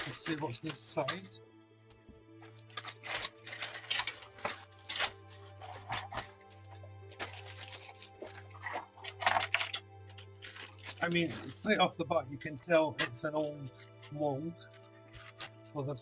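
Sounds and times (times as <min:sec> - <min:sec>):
plastic bag crinkling: 0:00.0 - 0:01.3, 0:02.4 - 0:11.8, 0:12.9 - 0:15.7
background music: 0:00.0 - 0:16.0.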